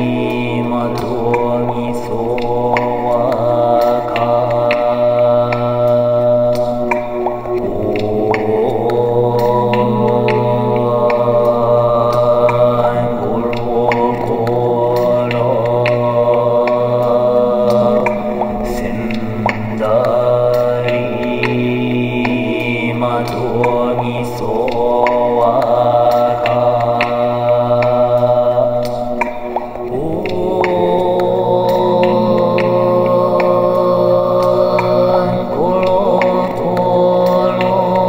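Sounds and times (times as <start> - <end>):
beatboxed clicks: 0.0 - 38.0
man chanting in loops: 0.0 - 38.0
steady low drone: 0.0 - 38.0.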